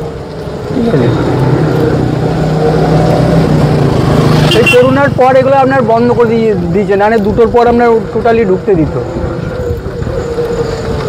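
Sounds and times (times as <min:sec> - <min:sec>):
vehicle motor humming: 0:00.0 - 0:11.0
person talking: 0:00.7 - 0:01.9.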